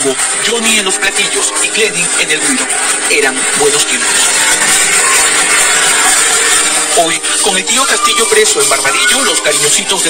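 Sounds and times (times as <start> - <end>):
small band playing: 0.0 - 10.0.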